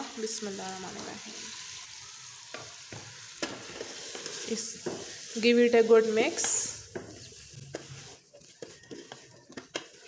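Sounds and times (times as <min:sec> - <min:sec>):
food sizzling in hot oil: 0:00.0 - 0:10.0.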